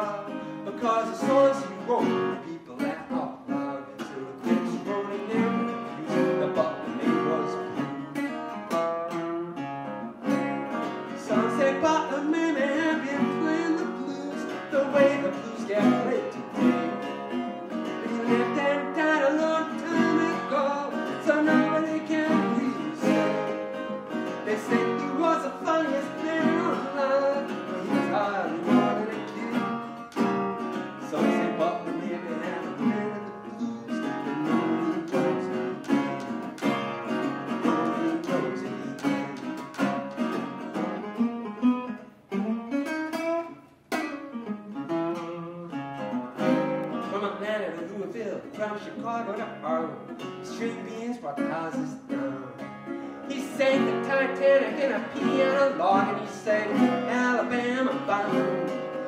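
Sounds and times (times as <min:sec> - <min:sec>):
resonator guitar blues playing: 0:00.0 - 0:59.0.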